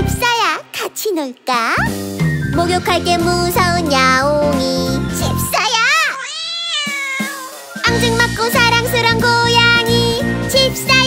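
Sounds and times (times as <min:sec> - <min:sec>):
children's song backing music: 0:00.0 - 0:06.0, 0:07.2 - 0:11.0
long meow in song: 0:05.6 - 0:08.0.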